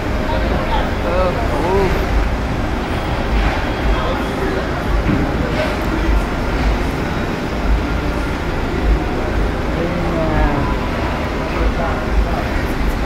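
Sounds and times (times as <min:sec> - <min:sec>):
constant background noise: 0:00.0 - 0:13.0
faint voices: 0:00.0 - 0:13.0
vehicle engines rumbling: 0:00.0 - 0:13.0.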